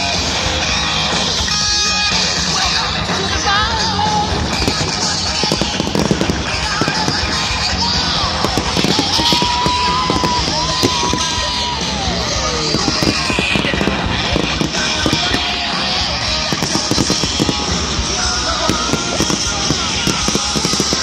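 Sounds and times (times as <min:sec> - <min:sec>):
loud rock music: 0:00.0 - 0:20.9
fireworks crackling and banging: 0:00.1 - 0:21.0.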